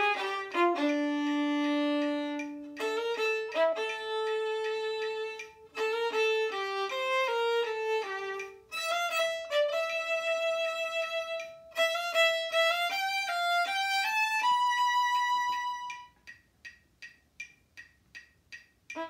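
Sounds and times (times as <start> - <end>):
solo violin melody: 0.0 - 16.2.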